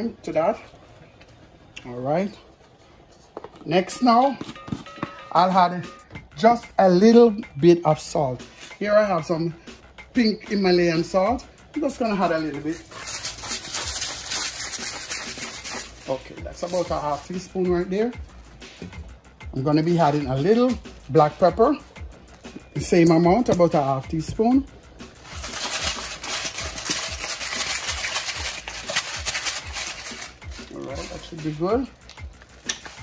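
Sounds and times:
salt grinder crackling: 12.9s - 16.0s, 25.2s - 30.8s.

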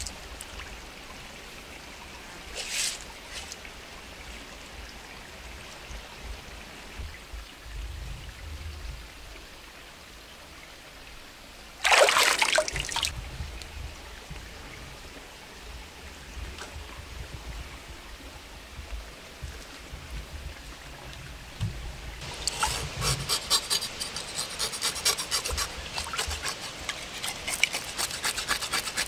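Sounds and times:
stream trickling: 0.0s - 29.0s
knife scraping fish scales: 22.5s - 29.0s.

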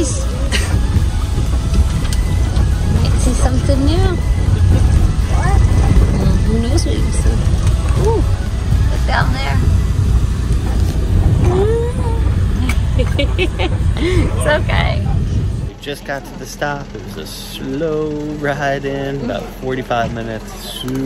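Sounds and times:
bus engine rumble: 0.0s - 21.0s
indistinct voices: 0.0s - 21.0s.

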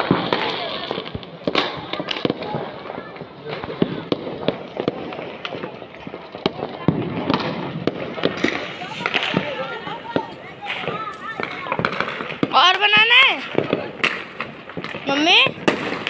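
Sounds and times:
firecrackers popping: 0.0s - 16.0s
people talking: 8.4s - 14.0s, 15.0s - 15.6s.

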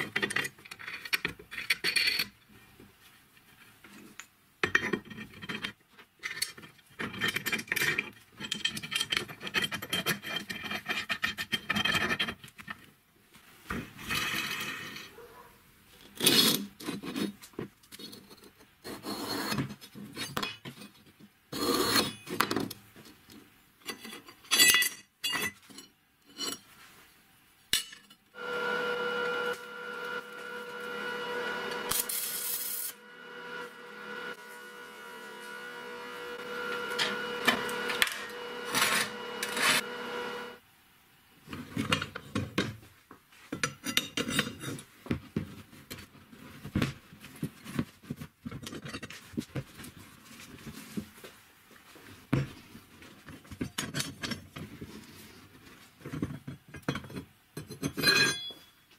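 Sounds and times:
continuous sound with ringing tones: 27.8s - 40.6s, 56.2s - 58.9s.

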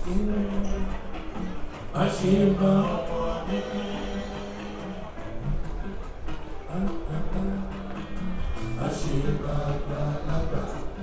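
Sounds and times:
live juju band music: 0.0s - 11.0s.

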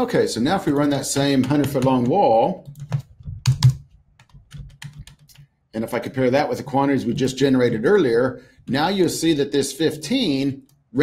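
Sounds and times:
keyboard keystrokes: 0.6s - 5.5s.

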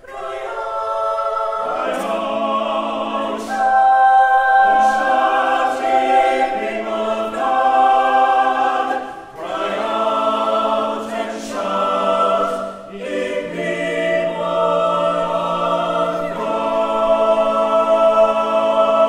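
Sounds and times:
choir singing unaccompanied: 0.0s - 19.0s.

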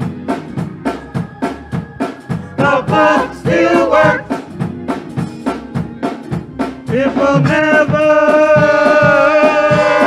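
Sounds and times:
drum beat: 0.0s - 10.0s
keyboard: 0.0s - 10.0s
singers singing gospel: 1.1s - 4.6s, 6.8s - 10.0s.

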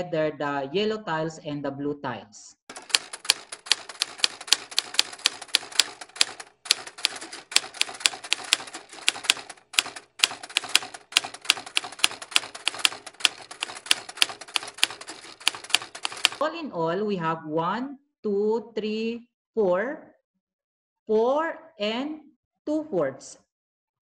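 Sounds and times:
rapid regular clicking: 2.7s - 16.4s.

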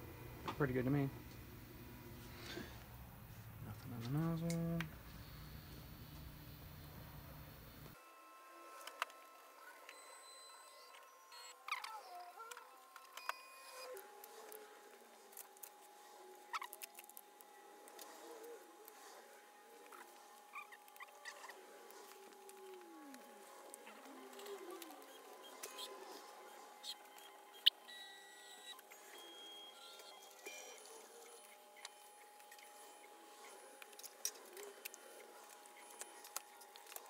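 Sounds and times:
stepper motors whining: 5.1s - 37.0s.

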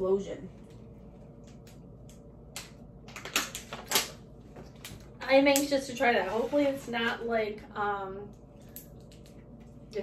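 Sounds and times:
snack packaging crinkling: 2.6s - 5.0s.

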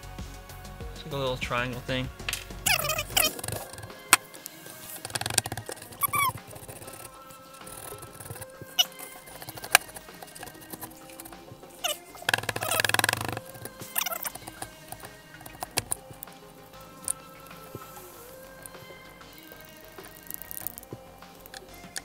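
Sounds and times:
background music: 0.0s - 22.0s
sharp clicks: 2.2s - 22.0s
wet plaster squelching by hand: 2.4s - 22.0s.

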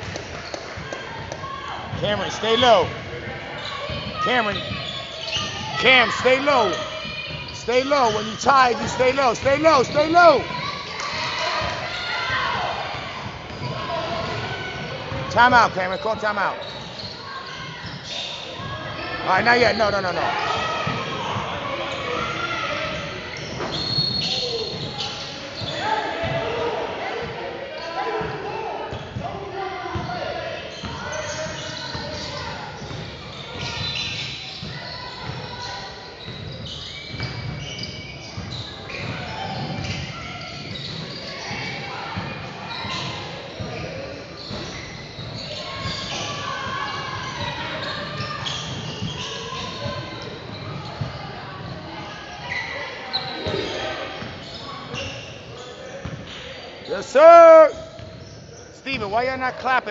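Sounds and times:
basketball bouncing on court: 0.0s - 26.5s, 29.9s - 30.2s, 30.8s - 35.6s, 36.2s - 51.8s, 56.0s - 56.2s
voices echoing in gym: 0.0s - 59.9s.

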